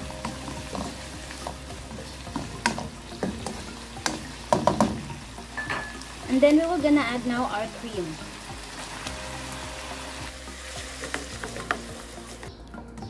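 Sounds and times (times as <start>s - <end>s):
food sizzling: 0.0s - 12.8s.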